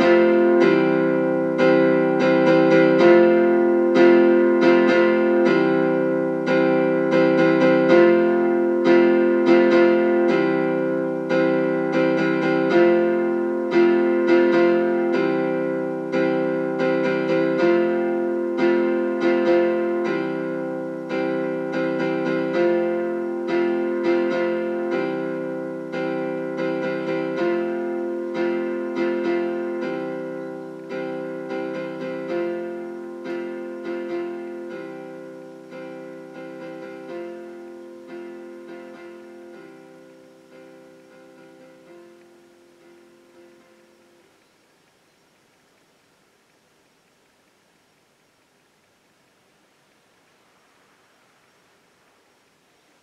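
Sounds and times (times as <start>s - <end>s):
faint hiss: 0.0s - 53.0s
keyboard chords: 0.0s - 53.0s.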